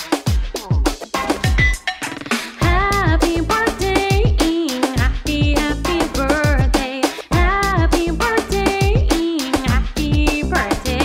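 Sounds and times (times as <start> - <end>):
band with steady low beat: 0.0 - 1.9, 2.6 - 11.0
person singing: 2.5 - 11.0.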